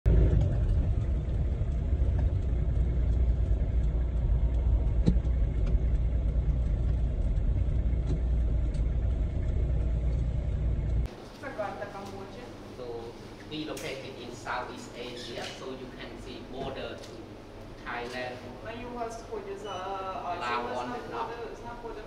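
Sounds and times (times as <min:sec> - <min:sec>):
car engine rumble inside cabin: 0:00.0 - 0:11.1.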